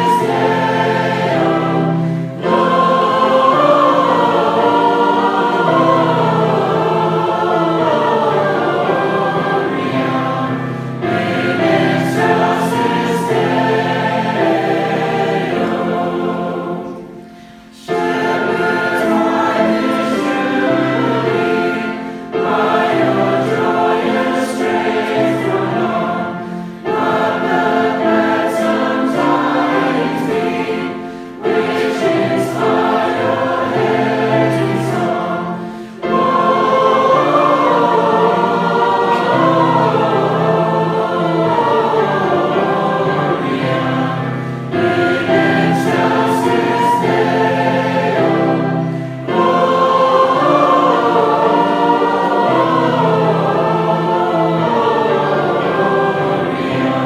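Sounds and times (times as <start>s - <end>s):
flute: 0.0s - 10.4s, 11.1s - 16.3s, 17.9s - 54.3s
congregation singing a hymn: 0.0s - 57.0s.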